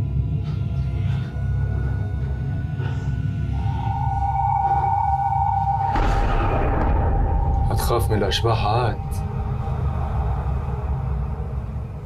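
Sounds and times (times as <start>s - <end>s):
low ominous rumbling drone: 0.0s - 12.0s.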